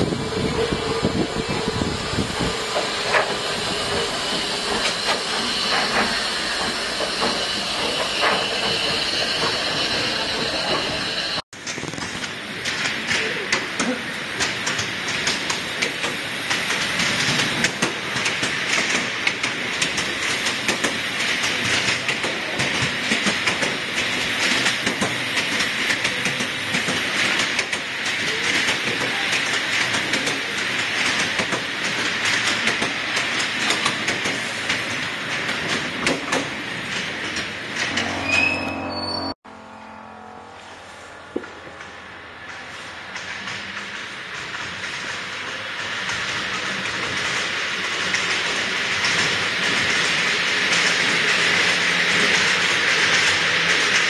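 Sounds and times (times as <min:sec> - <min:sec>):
train wheels clickety-clack: 0:00.0 - 0:38.0, 0:41.8 - 0:54.0
steam hissing: 0:00.4 - 0:11.4.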